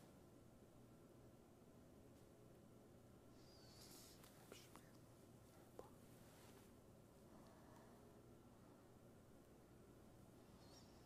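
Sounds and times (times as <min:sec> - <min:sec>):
soft breathy hiss: 0:03.1 - 0:11.0.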